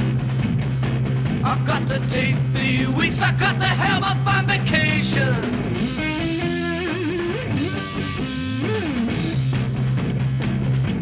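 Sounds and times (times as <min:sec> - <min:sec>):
drums: 0:00.0 - 0:11.0
electric guitar bending notes: 0:00.0 - 0:11.0
steady bass line: 0:00.0 - 0:11.0
person singing: 0:01.4 - 0:05.7.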